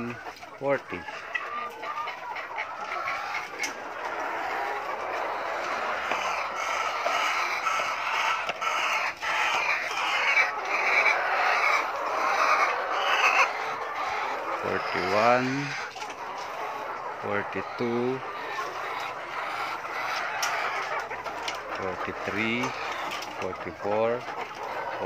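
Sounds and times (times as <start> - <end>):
hens clucking: 0.0 - 25.0.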